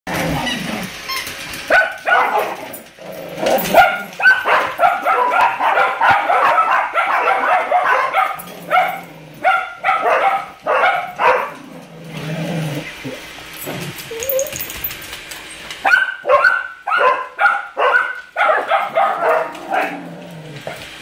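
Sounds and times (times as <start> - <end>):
dog barking and yipping: 0.4 - 11.7, 12.8 - 14.8, 15.8 - 20.0.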